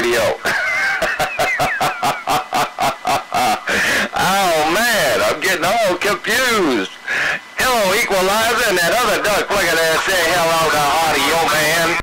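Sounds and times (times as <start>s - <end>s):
wavering voice-like radio calls: 4.2s - 12.0s
chopped stuttering radio sound: 7.7s - 12.0s.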